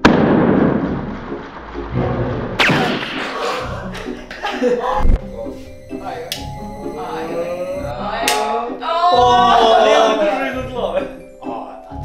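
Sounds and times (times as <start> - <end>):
water balloon bursting: 0.0 - 4.2
water splashing down: 0.3 - 4.0
music: 0.6 - 12.0
hit with falling swish: 1.9 - 3.7.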